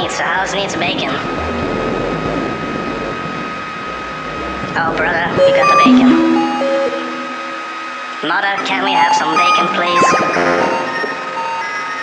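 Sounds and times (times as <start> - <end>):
rushing noise drone: 1.2 - 8.5
thin high tone: 5.5 - 8.3.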